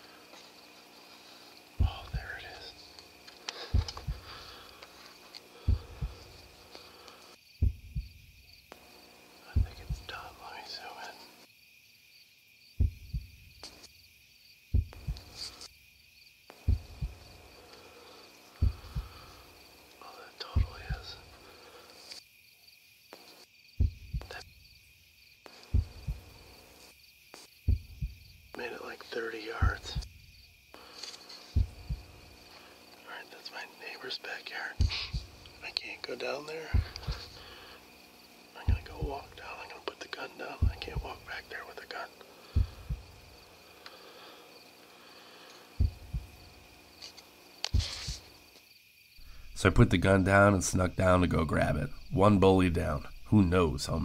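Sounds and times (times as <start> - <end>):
faint high whine: 0.0 - 11.5, 14.8 - 15.7, 16.5 - 22.2, 23.1 - 24.6, 25.4 - 48.5
low thumps in pairs: 7.6 - 8.2, 9.6 - 10.2, 12.8 - 13.4, 14.8 - 15.4, 16.7 - 17.3, 18.6 - 19.2, 23.8 - 24.4, 25.7 - 26.3, 27.7 - 28.3, 31.6 - 32.2, 34.8 - 35.4, 36.7 - 37.4, 38.7 - 39.2, 40.6 - 41.4, 42.6 - 43.3, 45.8 - 46.4, 47.7 - 48.3.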